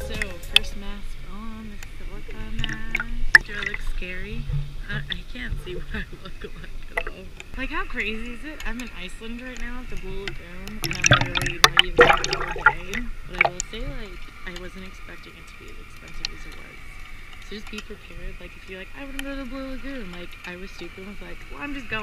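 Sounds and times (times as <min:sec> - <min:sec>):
voices talking: 0:00.0 - 0:22.0
water lapping and splashing: 0:00.0 - 0:22.0.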